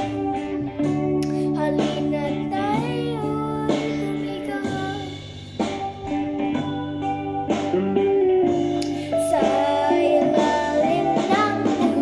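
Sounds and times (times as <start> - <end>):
guitar accompaniment: 0.0 - 12.0
boy singing into microphone: 1.2 - 5.5, 9.0 - 12.0.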